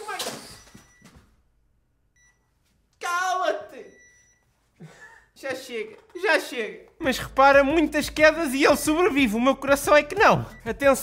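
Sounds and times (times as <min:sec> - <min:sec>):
man exclaiming: 0:03.0 - 0:03.9.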